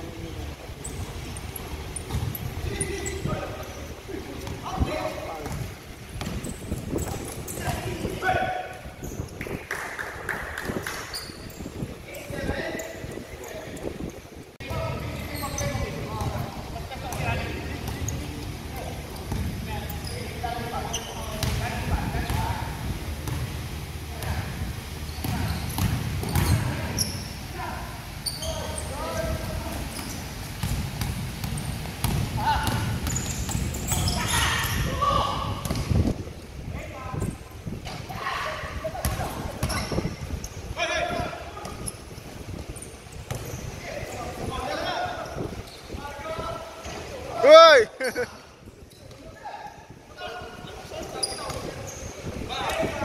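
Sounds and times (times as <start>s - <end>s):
basketball bouncing on court: 0.9s - 3.1s, 5.4s - 8.0s, 14.9s - 19.6s, 21.3s - 22.4s, 25.2s - 27.0s, 29.2s - 34.3s, 35.5s - 36.1s, 39.0s - 40.0s, 43.3s - 43.6s
basketball bouncing: 2.0s - 2.5s, 5.4s - 7.6s, 19.2s - 19.6s, 25.2s - 26.7s, 30.6s - 34.1s, 35.6s - 36.0s, 43.3s - 43.5s.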